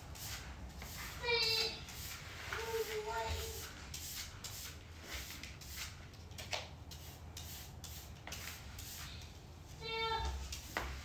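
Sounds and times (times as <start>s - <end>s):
hand brush sweeping grains: 0.0s - 6.0s, 6.9s - 9.8s.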